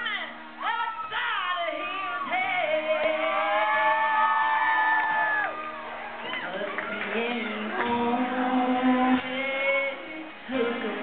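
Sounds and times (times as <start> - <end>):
crowd noise and talk: 0.0 - 11.0
woman singing a long high note: 0.6 - 5.2, 6.3 - 11.0.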